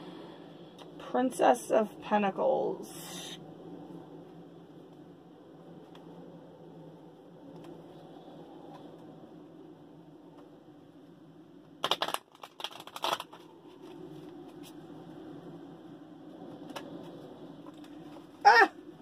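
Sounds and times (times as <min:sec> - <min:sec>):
low room hum: 0:00.0 - 0:19.0
cards being shuffled: 0:11.8 - 0:14.8.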